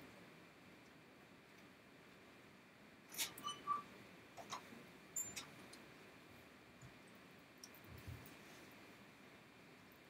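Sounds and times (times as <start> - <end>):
thin high squeak: 3.1 - 4.6, 5.2 - 5.5.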